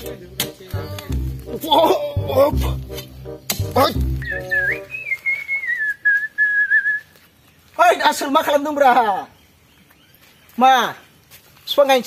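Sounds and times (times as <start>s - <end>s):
background music: 0.0s - 5.1s
long whistled note sliding down: 4.2s - 7.0s.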